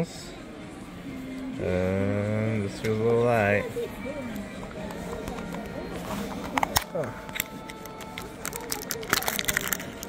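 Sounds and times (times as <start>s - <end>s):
background shop music: 0.0s - 10.0s
chatter: 0.8s - 10.0s
plastic capsule clicks: 6.5s - 10.0s.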